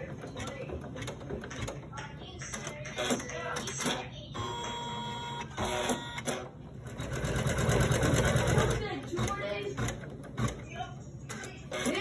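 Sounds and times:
embroidery machine chattering: 0:00.0 - 0:12.0.

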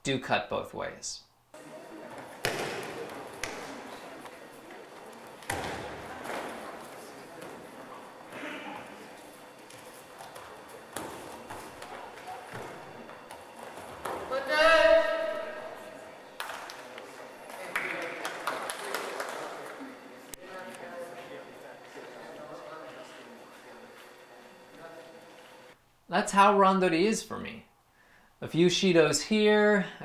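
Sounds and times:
murmur of voices: 0:01.6 - 0:10.0, 0:14.3 - 0:25.7.

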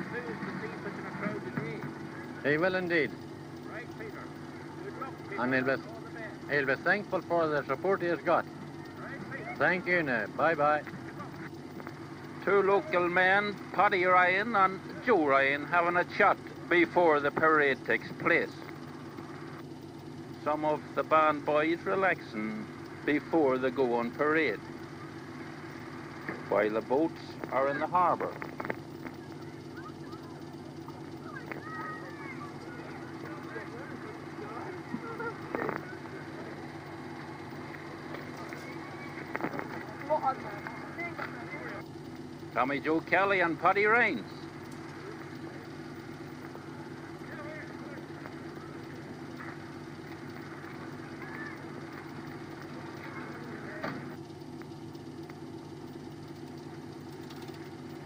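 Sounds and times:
low hum: 0:00.0 - 0:58.0.

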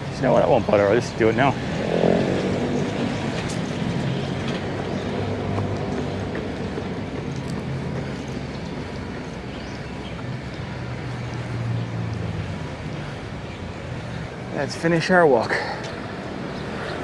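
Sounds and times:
city traffic rumble: 0:00.0 - 0:17.0.

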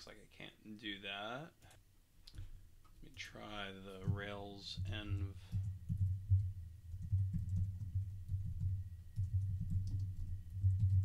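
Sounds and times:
typing on computer keyboard: 0:05.5 - 0:11.0.

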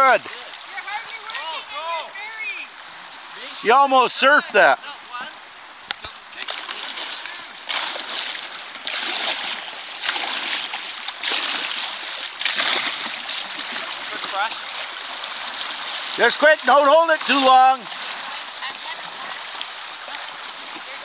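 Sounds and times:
river current rushing: 0:00.0 - 0:21.0
water splashes: 0:00.0 - 0:21.0.

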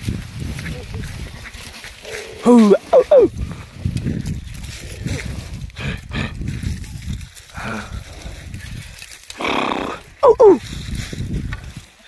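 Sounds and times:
water buffalo bellowing: 0:02.0 - 0:03.3, 0:09.4 - 0:10.6.

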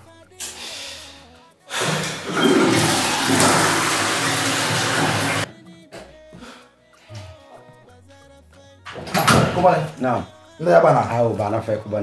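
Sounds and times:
toilet flushing: 0:01.7 - 0:05.5.

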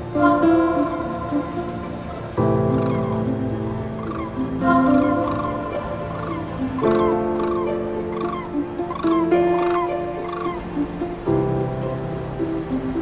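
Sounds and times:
background music with held notes: 0:00.0 - 0:13.0
flock of birds calling: 0:01.3 - 0:11.2.

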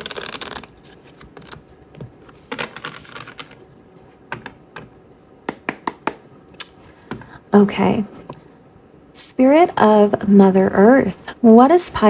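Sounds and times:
cards being riffle-shuffled: 0:00.0 - 0:03.6.

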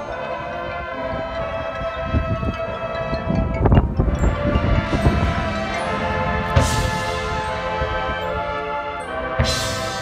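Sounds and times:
brass and woodwinds sustained chord: 0:00.0 - 0:10.0
bass drums and percussion hits: 0:03.5 - 0:08.5
loud percussion strike: 0:04.3 - 0:08.3.

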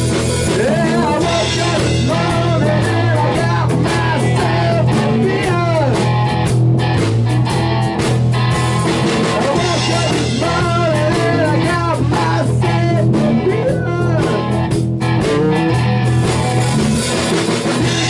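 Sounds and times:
bass guitar: 0:00.0 - 0:18.0
drum kit: 0:00.0 - 0:18.0
electric guitar lead: 0:00.0 - 0:18.0
rhythm guitar: 0:00.0 - 0:18.0.

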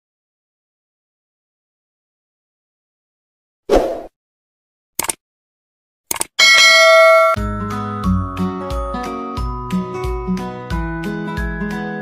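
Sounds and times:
notification bell chime: 0:06.4 - 0:07.4.

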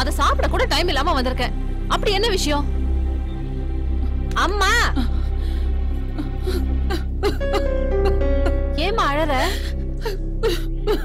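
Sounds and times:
background music: 0:00.0 - 0:11.0
woman sobbing and whimpering: 0:04.9 - 0:11.0.

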